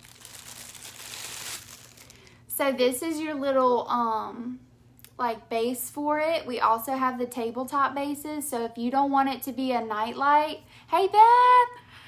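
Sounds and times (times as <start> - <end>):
packaging crinkling and rustling: 0.0 - 2.4.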